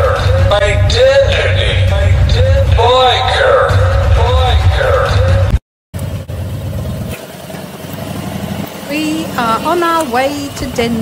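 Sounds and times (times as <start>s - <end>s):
voice over heavy low backing: 0.0s - 5.5s
motorcycle engine at low revs: 6.0s - 11.0s.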